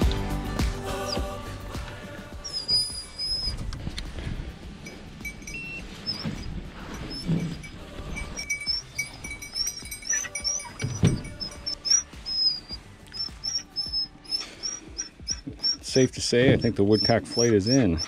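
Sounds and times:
dogs whining: 0.9 - 1.3, 2.4 - 3.7, 4.9 - 18.0.

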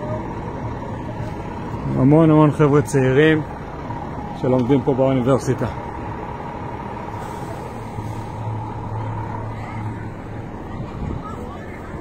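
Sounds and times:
street noise: 0.0 - 12.0
vehicle engine running: 0.0 - 12.0.

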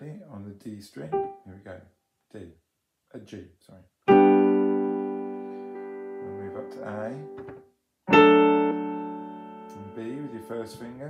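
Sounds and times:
person speaking: 0.0 - 3.9, 6.2 - 7.5, 9.7 - 11.0
piano chords: 1.0 - 1.6, 4.1 - 11.0.

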